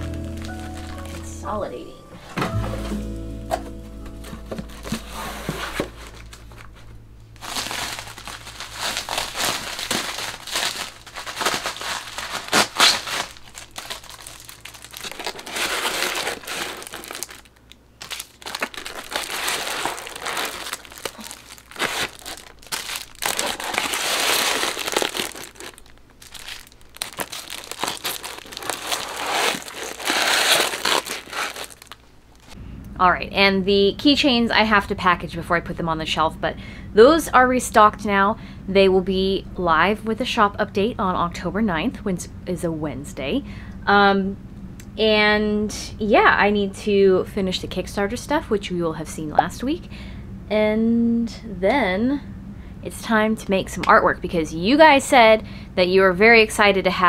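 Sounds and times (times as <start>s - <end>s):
plastic packaging crinkling: 0.0s - 1.3s, 4.6s - 32.6s.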